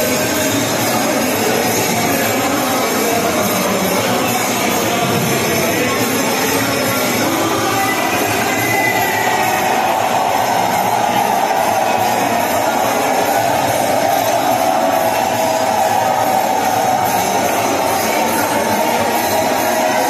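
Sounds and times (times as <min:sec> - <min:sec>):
devotional temple music: 0:00.0 - 0:20.0.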